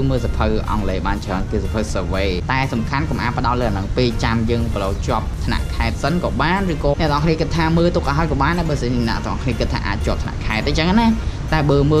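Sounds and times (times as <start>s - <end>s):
light background music: 0.0s - 12.0s
young man talking: 0.0s - 12.0s.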